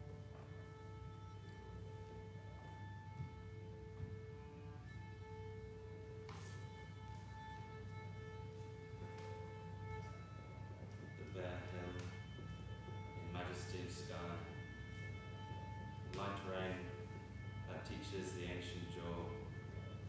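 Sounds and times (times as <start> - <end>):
cello bowing long notes: 0.0 - 20.0
steady low drone: 0.0 - 20.0.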